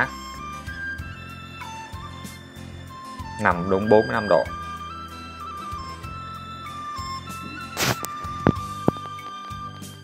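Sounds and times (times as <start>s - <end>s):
background music with flute: 0.0s - 10.0s.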